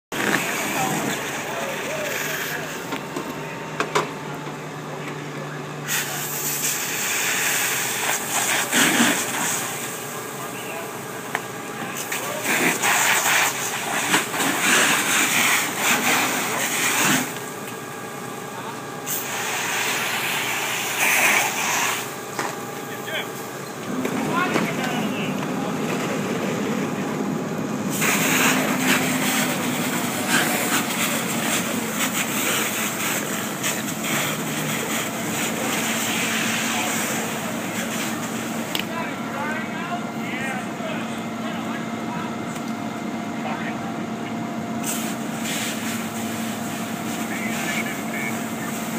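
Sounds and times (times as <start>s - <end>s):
engine hum: 0.1s - 48.9s
hose water spraying and hissing: 0.2s - 2.9s, 5.8s - 10.2s, 11.8s - 17.5s, 19.0s - 22.2s, 27.9s - 38.6s, 44.8s - 48.9s.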